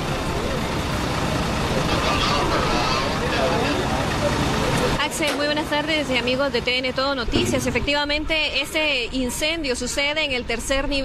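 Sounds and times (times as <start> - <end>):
people's voices: 0.0 - 11.0
vehicle engine and traffic rumble: 0.0 - 11.0.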